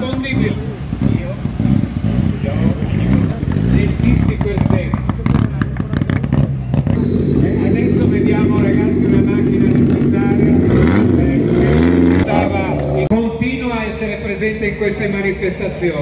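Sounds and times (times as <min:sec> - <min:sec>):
exhaust pops and crackles: 0:00.0 - 0:13.2
rally car engine passing: 0:00.0 - 0:13.2.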